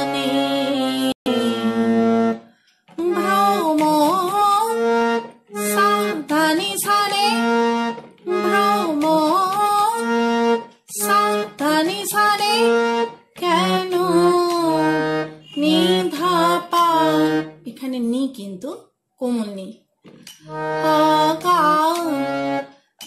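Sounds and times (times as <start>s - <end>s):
woman singing: 0.0s - 2.0s, 3.0s - 5.0s, 5.6s - 7.6s, 8.3s - 10.1s, 10.9s - 12.8s, 13.4s - 17.4s, 20.7s - 22.4s
harmonium melody: 0.0s - 17.8s, 20.4s - 22.9s.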